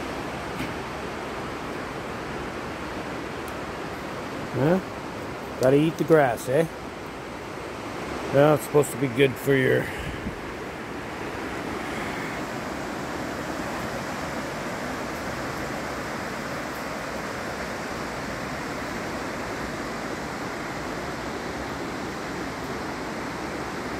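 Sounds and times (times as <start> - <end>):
river rapids rushing: 0.0 - 23.9.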